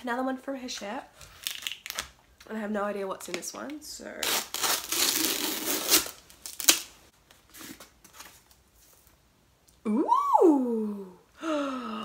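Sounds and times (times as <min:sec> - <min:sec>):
cardboard tearing: 0:04.2 - 0:06.9.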